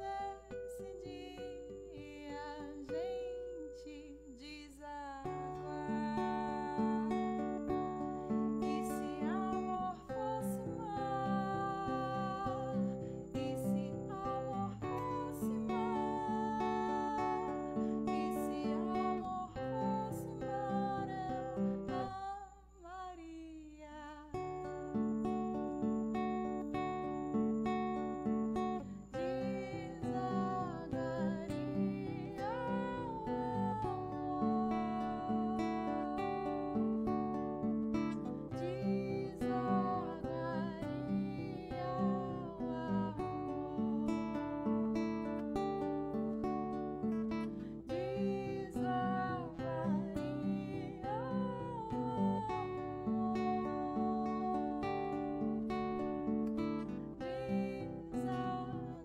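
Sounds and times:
acoustic guitar: 0.0 - 59.0
woman singing: 0.0 - 59.0.

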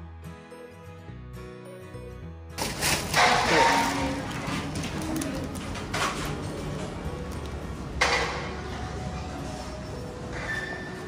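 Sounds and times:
background music: 0.0 - 11.0
plastic carrier bag rustling: 2.6 - 6.5
shop ambience: 2.6 - 11.0.

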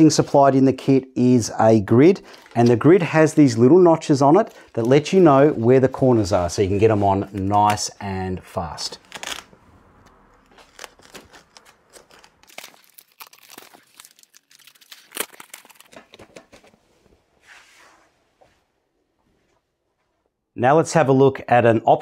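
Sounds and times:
hook-and-loop fastener tearing: 9.0 - 9.5, 10.4 - 16.6.

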